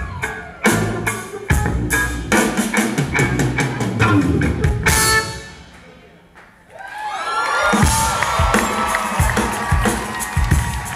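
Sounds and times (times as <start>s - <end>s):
live rock band: 0.0s - 5.8s, 7.6s - 10.9s
crowd cheering: 6.6s - 10.9s
drums kicking in: 7.6s - 10.9s.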